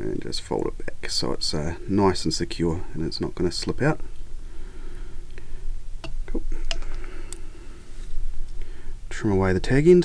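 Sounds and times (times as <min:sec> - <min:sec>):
steady low hum: 0:00.0 - 0:10.0
faint rustle of thread: 0:07.0 - 0:08.7.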